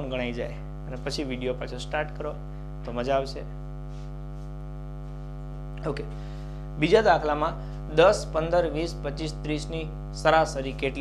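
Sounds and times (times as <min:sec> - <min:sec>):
electrical mains hum: 0:00.0 - 0:11.0
man's voice: 0:06.8 - 0:11.0.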